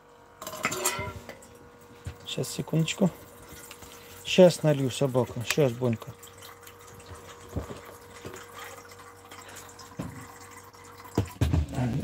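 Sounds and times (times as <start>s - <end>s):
water running into a bowl: 2.2s - 12.0s.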